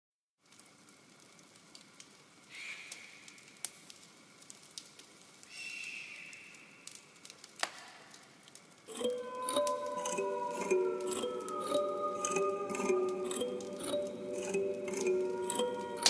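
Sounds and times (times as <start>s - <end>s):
crackling hiss with clicks: 0.4s - 10.0s.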